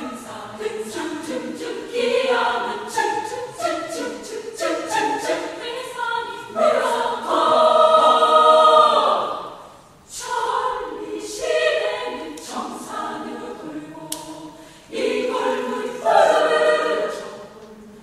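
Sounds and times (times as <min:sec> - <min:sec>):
women's choir singing: 0:00.0 - 0:18.0.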